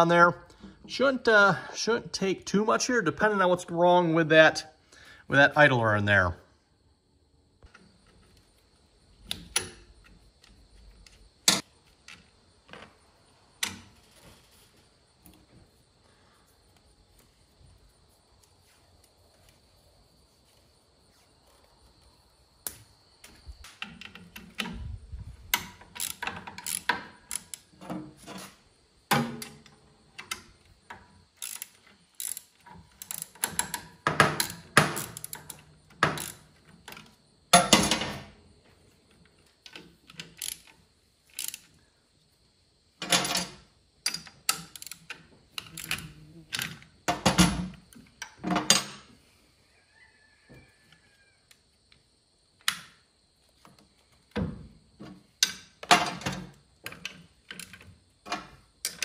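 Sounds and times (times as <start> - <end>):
socket ratchet clicking: 25.6 - 27.7, 31.4 - 36.5, 40.1 - 41.7, 44.1 - 46.0.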